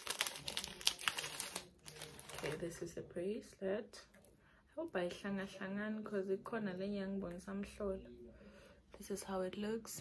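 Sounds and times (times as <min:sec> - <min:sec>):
packaging crinkling torn open: 0:00.0 - 0:02.6.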